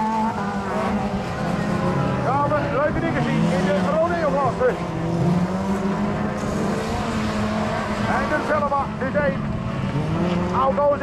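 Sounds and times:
racing car engines droning: 0.0s - 11.0s.

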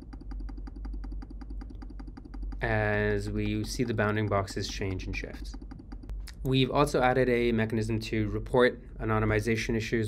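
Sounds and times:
rapid computer clicking: 0.0s - 6.6s
low steady hum: 0.0s - 10.0s.

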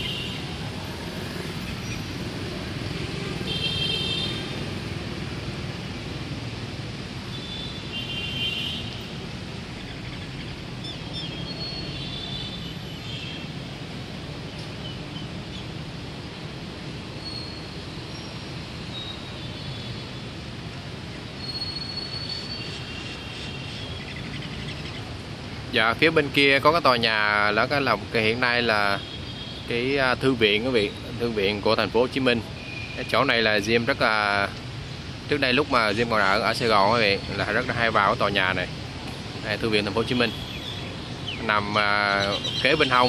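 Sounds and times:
city traffic rumble: 0.0s - 43.0s.

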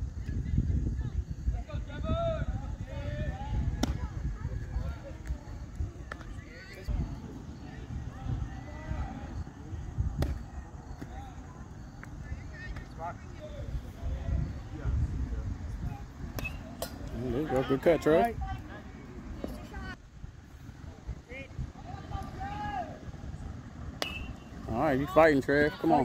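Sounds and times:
distant voices chattering: 0.1s - 26.0s.

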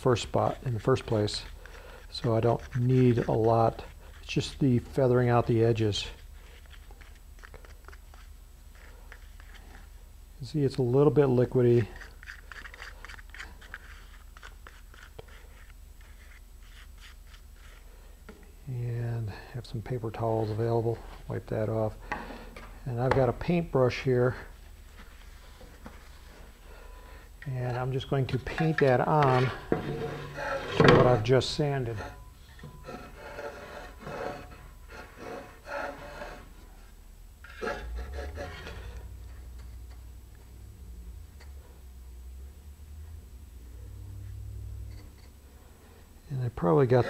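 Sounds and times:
soft paintbrush strokes: 0.0s - 10.1s, 10.7s - 22.0s, 22.9s - 40.1s, 43.8s - 47.0s
tool scraping inside container: 0.4s - 6.2s, 27.7s - 36.7s, 37.4s - 39.4s, 46.6s - 47.0s.

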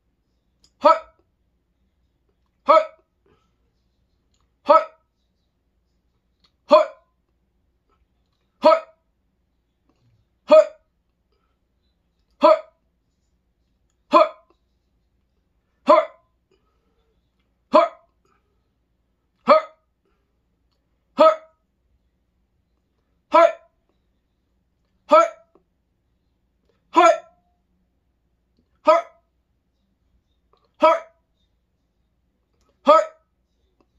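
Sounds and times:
man hiccuping: 0.8s - 1.2s, 2.7s - 3.0s, 6.7s - 7.0s, 10.5s - 10.8s, 25.1s - 25.5s, 27.0s - 27.4s, 32.8s - 33.2s.

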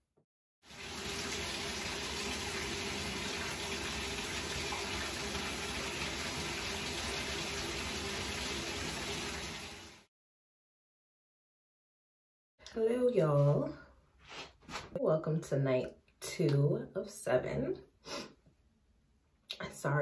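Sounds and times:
sink tap running: 0.7s - 10.0s
face being washed: 0.7s - 10.1s.

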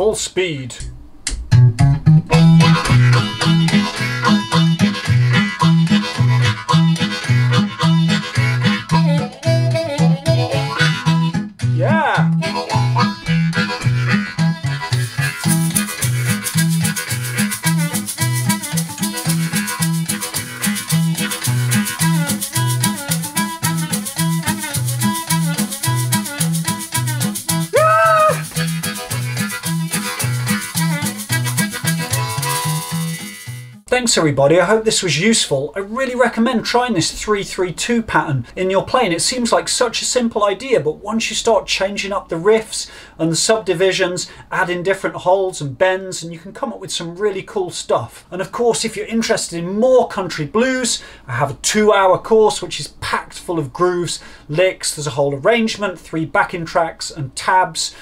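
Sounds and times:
low pulsing backing groove: 0.8s - 27.7s
harmonica playing blues riff: 1.8s - 33.8s
metal shaker rattle: 15.1s - 33.6s.

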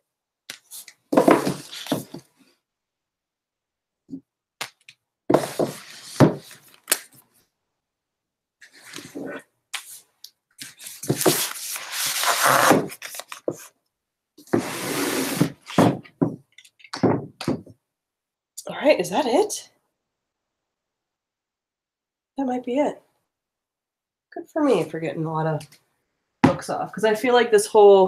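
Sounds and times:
books rustling and knocking on shelf: 1.1s - 2.3s, 5.3s - 6.7s, 10.6s - 11.8s, 14.4s - 17.8s.

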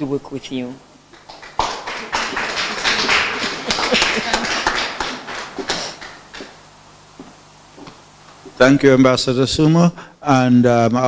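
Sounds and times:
audience applauding: 1.1s - 6.6s.

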